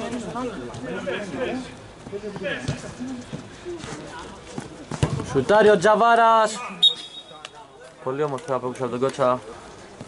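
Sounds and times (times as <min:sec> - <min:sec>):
ball kicked on artificial turf: 0:04.6 - 0:05.5.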